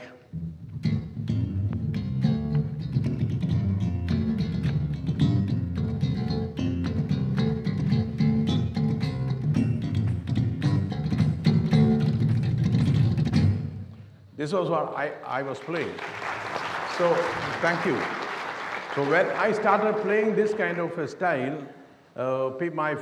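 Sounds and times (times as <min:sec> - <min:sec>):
slap bass guitar: 0:00.3 - 0:14.0.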